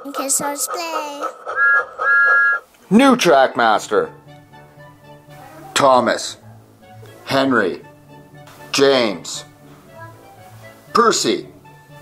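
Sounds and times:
soft regular beat: 0.1s - 1.6s.

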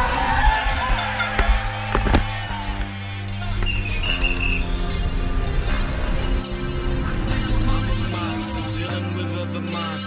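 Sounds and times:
hip-hop music: 0.0s - 10.0s
high whistling tone: 3.6s - 5.4s.

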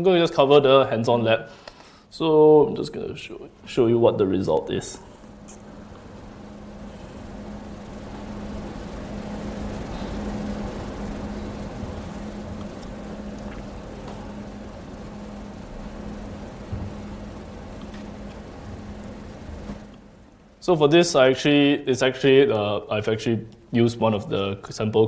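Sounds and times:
low room hum and rumble: 0.0s - 25.0s.

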